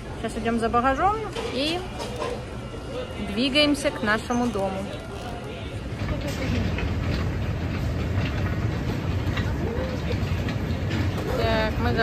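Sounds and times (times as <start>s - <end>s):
baggage carousel rumbling: 0.0s - 12.0s
conveyor clattering: 3.8s - 12.0s.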